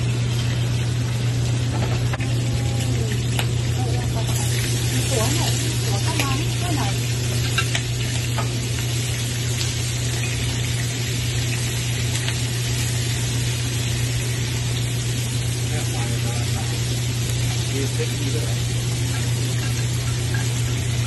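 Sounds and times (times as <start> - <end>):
food sizzling in a frying pan: 0.0 - 21.0.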